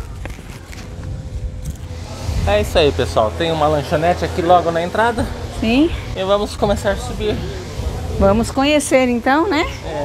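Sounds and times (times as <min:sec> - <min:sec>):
steps: 0:00.0 - 0:02.7
low rumble of handheld microphone: 0:00.0 - 0:09.9.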